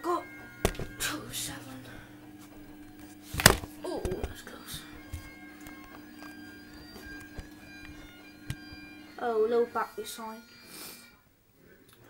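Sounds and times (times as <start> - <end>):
washing machine droning hum: 0.0 - 10.5.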